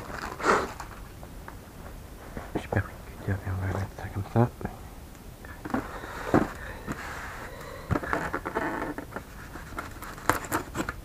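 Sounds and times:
box scraping and rustling: 0.0s - 1.0s
hands handling a box: 5.7s - 11.0s.

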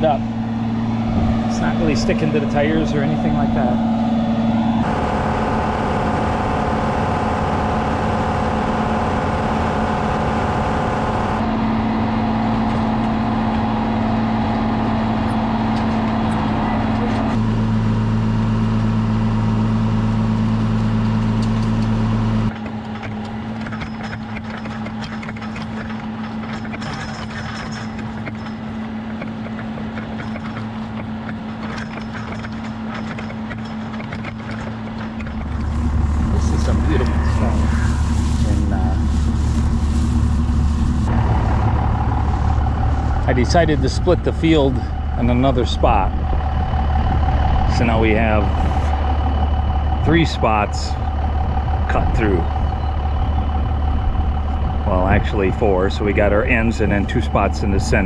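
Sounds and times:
tractor diesel engine under load: 0.0s - 58.0s.

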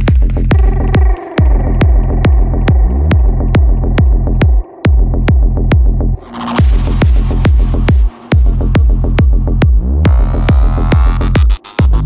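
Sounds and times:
kick drum: 0.0s - 12.0s
pulsing bassline: 0.0s - 12.0s
trance music: 0.0s - 12.0s.

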